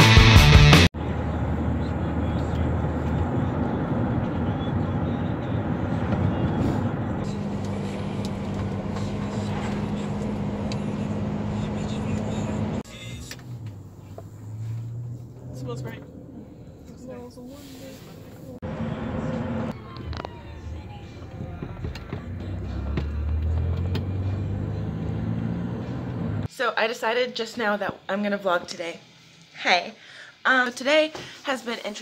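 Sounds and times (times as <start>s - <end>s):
car road and engine noise: 0.8s - 26.5s.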